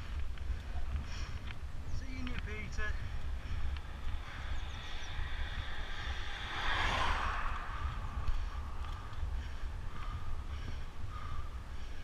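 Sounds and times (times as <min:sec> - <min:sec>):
wind rumbling on microphone: 0:00.0 - 0:12.0
car passing: 0:03.0 - 0:10.5.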